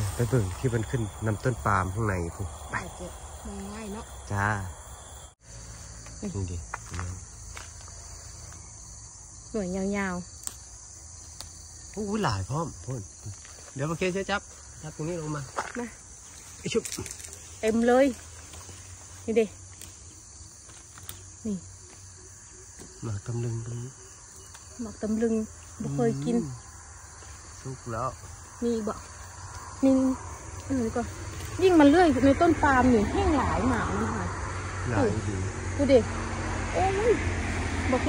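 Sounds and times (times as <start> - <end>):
insects trilling: 0.0 - 38.0
person speaking: 25.8 - 26.6.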